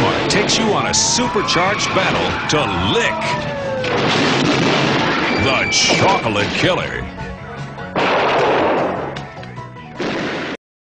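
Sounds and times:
loud blast sound effect: 3.8s - 6.7s, 8.0s - 9.2s, 10.0s - 10.6s.

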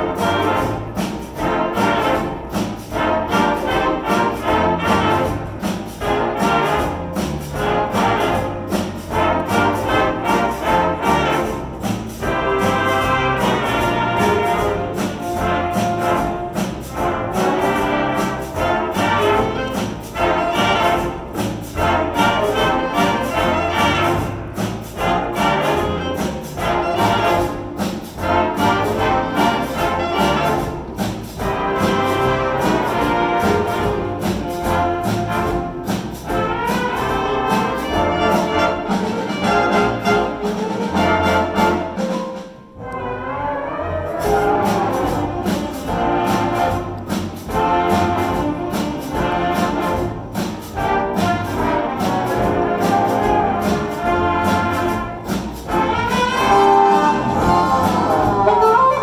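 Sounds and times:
jazz big band playing swing: 0.0s - 59.0s.

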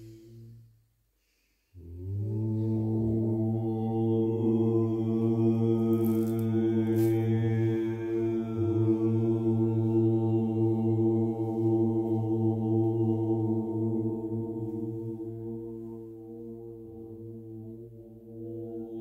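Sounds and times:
low voices chanting one note: 1.8s - 19.0s.

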